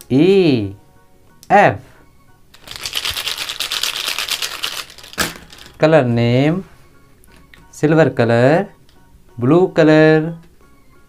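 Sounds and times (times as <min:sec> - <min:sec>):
plastic pens rattling and clicking: 0:02.6 - 0:05.8.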